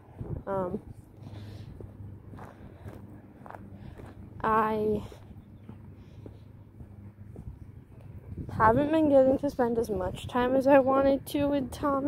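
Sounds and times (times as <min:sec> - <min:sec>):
soft footsteps walking: 0:00.0 - 0:09.7.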